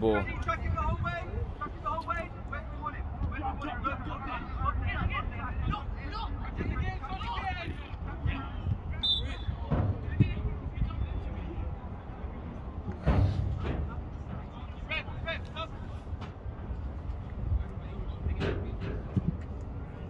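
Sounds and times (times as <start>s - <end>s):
wind rumble on microphone: 0.0s - 20.0s
sharp thump: 13.0s - 14.0s.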